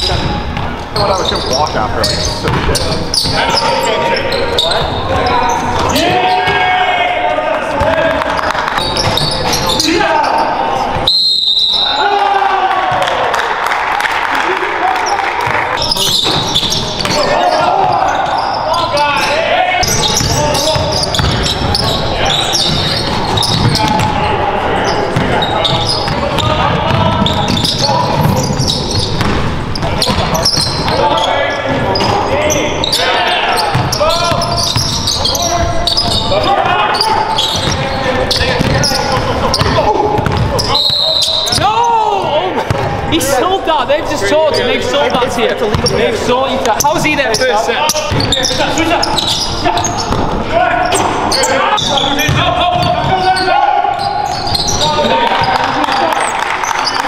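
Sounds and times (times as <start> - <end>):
sneakers squeaking: 0.0 - 12.2, 14.9 - 57.0
players' voices: 0.0 - 57.0
basketball bouncing on wooden floor: 2.4 - 2.8, 20.2 - 21.8, 22.7 - 24.1, 25.2 - 28.6, 38.6 - 38.9, 39.6 - 40.6, 52.2 - 53.2
basketball bouncing on hardwood: 39.6 - 40.5, 52.3 - 53.0.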